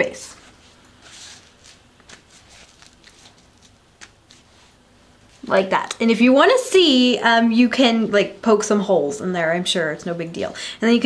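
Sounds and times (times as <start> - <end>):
tissue wipe rustling on face: 0.3 - 5.7.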